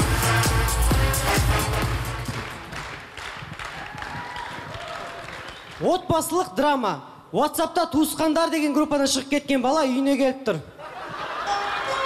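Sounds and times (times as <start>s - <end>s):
electronic dance music: 0.0s - 3.1s
audience clapping: 1.8s - 5.9s.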